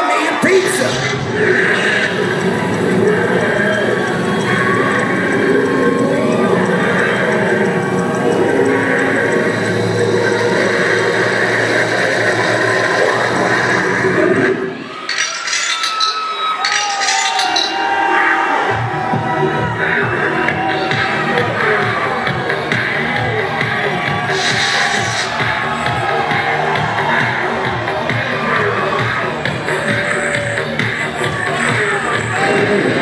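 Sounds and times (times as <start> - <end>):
crowd noise: 0.0 - 33.0
music over loudspeakers: 0.0 - 33.0
gliding tones: 0.4 - 14.9.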